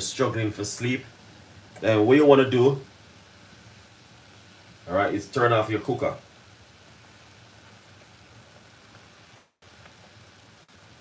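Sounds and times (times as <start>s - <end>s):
liquid boiling in saucepan: 0.0s - 11.0s.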